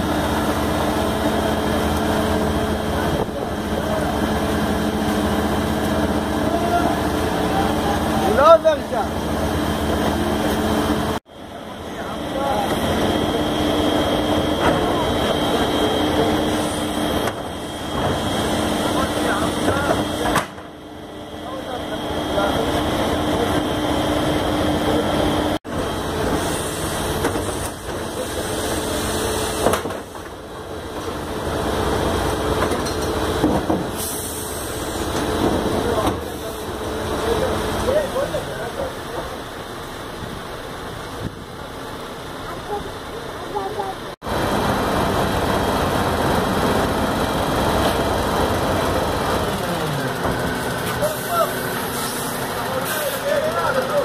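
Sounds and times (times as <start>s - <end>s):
people talking: 2.7s - 4.7s, 5.9s - 9.2s, 11.5s - 17.3s, 18.0s - 20.6s, 21.4s - 24.0s, 24.7s - 25.6s, 27.9s - 29.2s, 35.4s - 39.6s, 42.4s - 44.2s, 48.7s - 54.0s.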